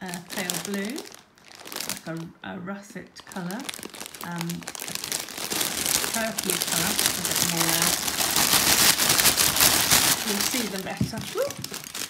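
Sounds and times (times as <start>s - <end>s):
plastic bags crinkling: 0.0s - 2.3s, 2.9s - 12.0s.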